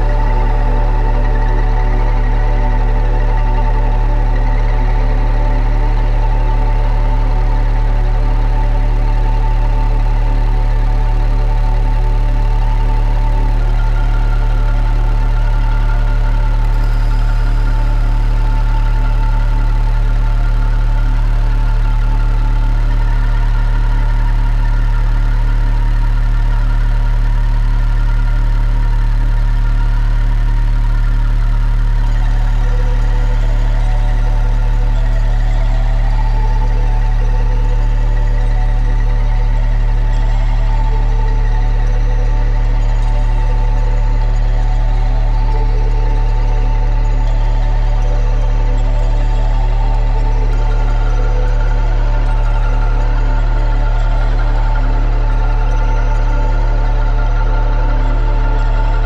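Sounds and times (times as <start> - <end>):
layered sustained tones: 0.0 - 59.0
low throbbing drone: 0.0 - 59.0.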